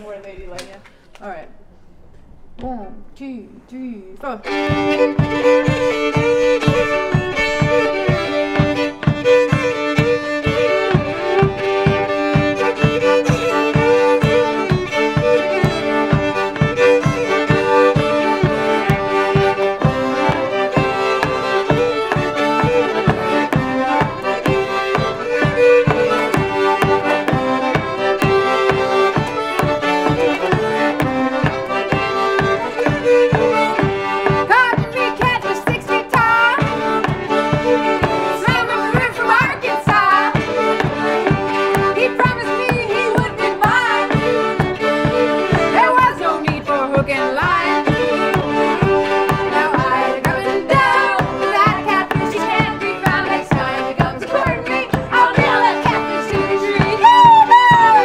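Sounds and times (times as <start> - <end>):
fiddles playing folk tune: 4.2 - 58.0.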